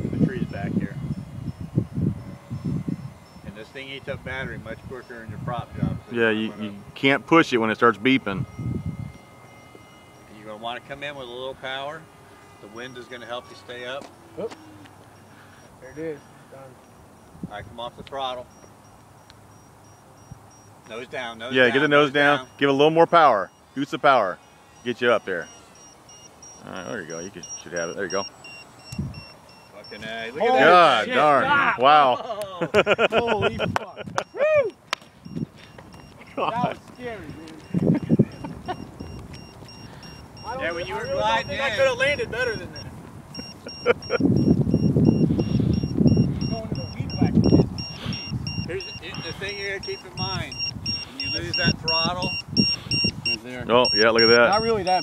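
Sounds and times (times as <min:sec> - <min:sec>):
wind rumbling on microphone: 0:00.0 - 0:07.3, 0:07.9 - 0:09.3, 0:17.0 - 0:18.8, 0:28.9 - 0:30.2, 0:33.0 - 0:55.0
insect chirping: 0:00.0 - 0:31.2, 0:34.0 - 0:55.0
high battery alarm beeps: 0:00.0 - 0:31.5, 0:32.8 - 0:55.0
people laughing: 0:31.2 - 0:34.7, 0:36.2 - 0:39.1, 0:43.4 - 0:44.3
man's voice: 0:53.4 - 0:55.0.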